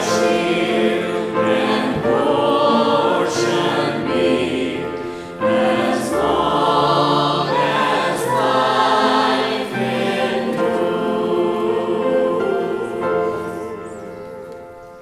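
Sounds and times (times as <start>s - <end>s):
vocal trio singing a hymn: 0.0s - 14.4s
grand piano: 0.0s - 15.0s.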